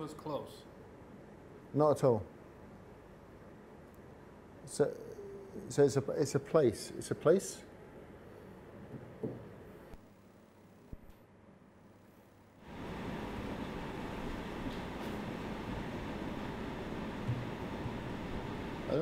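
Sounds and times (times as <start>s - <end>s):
steady hiss: 12.0s - 19.0s.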